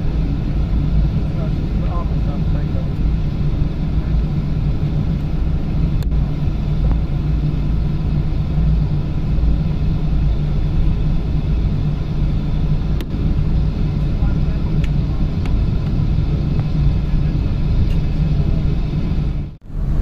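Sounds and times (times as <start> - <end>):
aircraft cabin engine rumble: 0.0 - 20.0
constant hum: 0.0 - 20.0.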